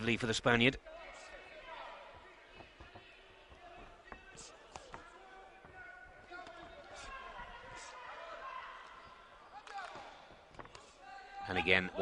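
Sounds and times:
distant crowd hubbub: 0.8s - 12.0s.

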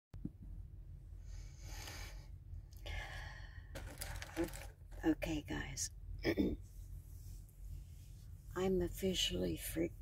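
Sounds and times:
steady low hum: 0.2s - 10.0s
woman breathing heavily: 1.2s - 4.0s.

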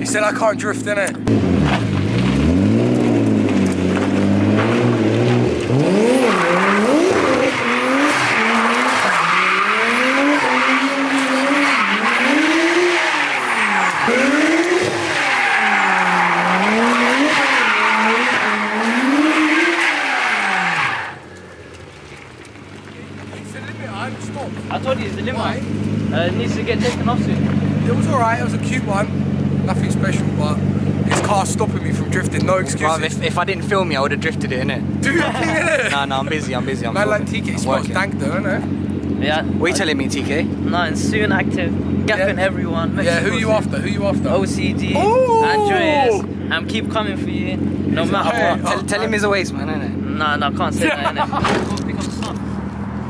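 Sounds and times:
car engine revving: 0.2s - 45.0s, 45.8s - 53.0s
tyres squealing: 4.3s - 21.6s
car engine idling: 20.8s - 53.0s.

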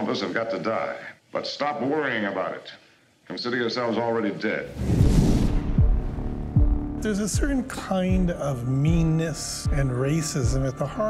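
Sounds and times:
deep bass pulses sliding down: 4.8s - 7.2s
heavy low hit: 4.8s - 7.6s.

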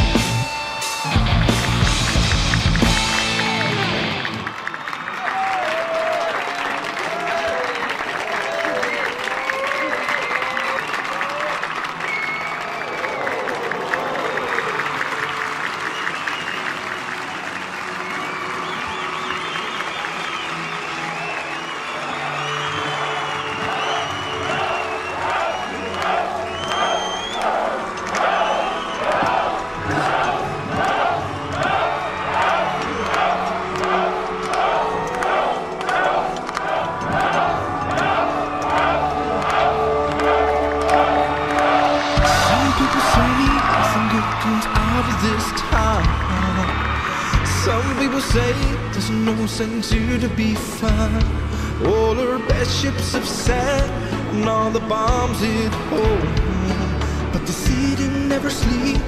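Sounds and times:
steady beat: 0.0s - 3.8s, 37.2s - 46.3s
audience cheering and applauding: 0.0s - 59.0s.

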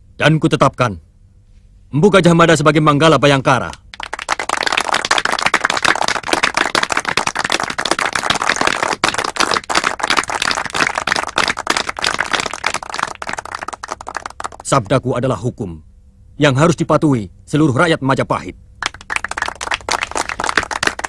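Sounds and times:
group of people clapping: 3.6s - 14.8s, 18.8s - 21.0s.

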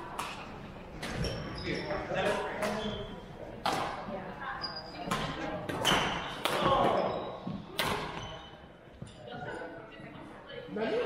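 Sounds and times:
shoes squeaking on floor: 1.0s - 3.3s, 4.5s - 9.6s
racket hitting shuttlecock: 7.7s - 8.3s.

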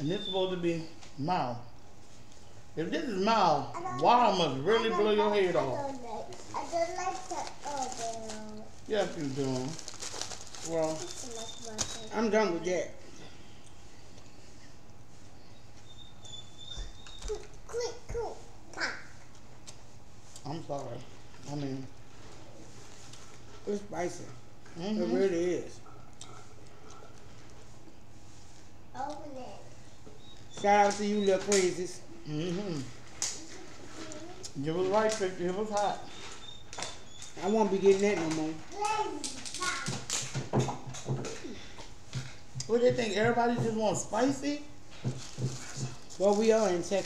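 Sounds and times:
paper wrappers crinkling: 5.7s - 12.2s, 45.1s - 47.0s.

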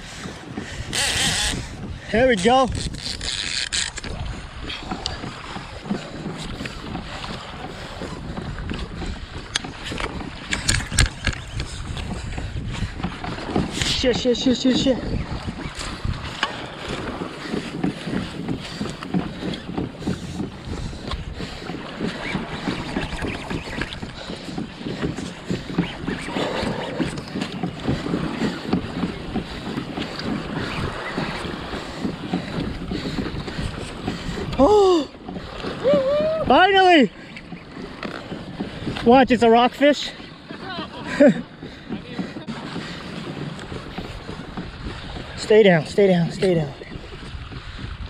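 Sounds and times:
choppy water: 0.0s - 48.0s
wind buffeting microphone: 0.0s - 48.0s
man calling: 34.6s - 35.2s, 35.8s - 37.1s.

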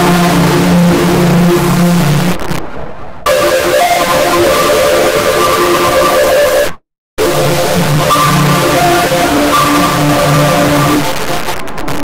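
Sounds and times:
distorted electronic jingle: 0.0s - 2.6s, 3.3s - 12.0s.

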